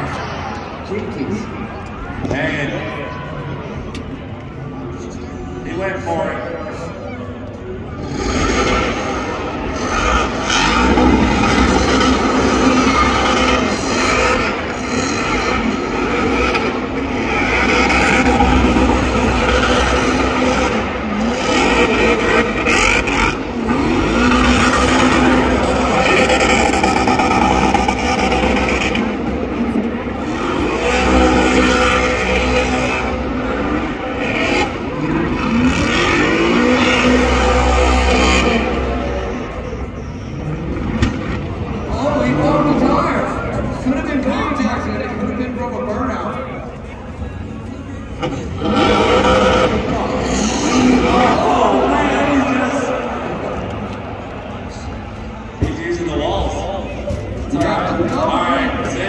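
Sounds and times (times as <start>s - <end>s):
car engine revving: 0.0s - 59.0s
tires spinning: 0.0s - 59.0s.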